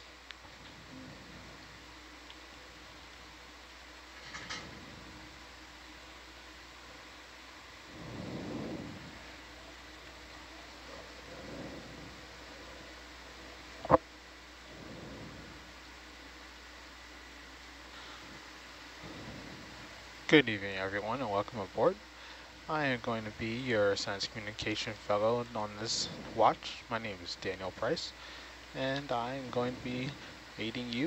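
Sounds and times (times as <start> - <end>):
microphone line hiss: 0.0 - 31.0
soft muffled sounds: 0.0 - 31.0.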